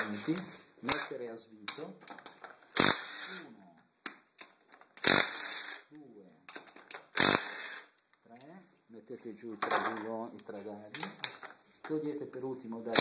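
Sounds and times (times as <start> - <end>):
impact driver bursts: 2.7 - 3.4, 5.0 - 5.8, 7.1 - 7.9.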